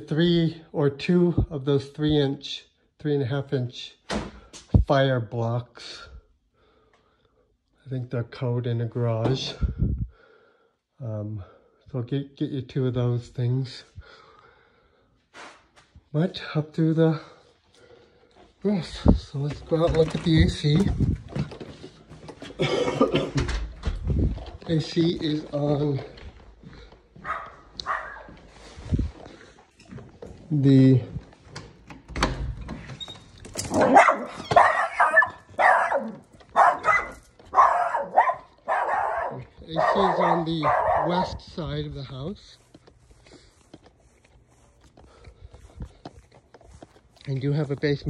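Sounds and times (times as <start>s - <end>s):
dog barking: 27.2s - 28.4s, 33.8s - 41.4s.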